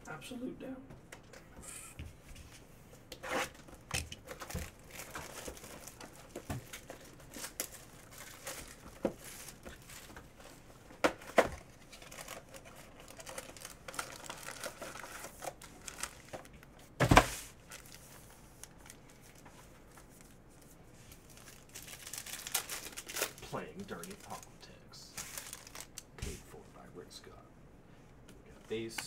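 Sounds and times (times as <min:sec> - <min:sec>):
cardboard box crinkling and tearing: 0:04.3 - 0:10.0, 0:11.9 - 0:16.4, 0:21.3 - 0:24.5, 0:25.2 - 0:26.0.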